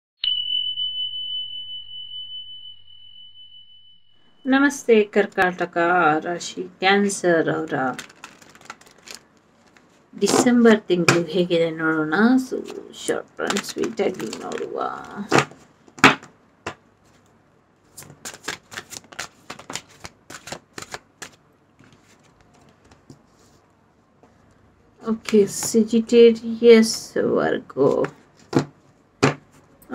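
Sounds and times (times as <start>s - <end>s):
high bell chime: 0.2s - 4.5s
cards being shuffled: 7.8s - 10.5s, 13.4s - 17.3s, 17.9s - 23.6s.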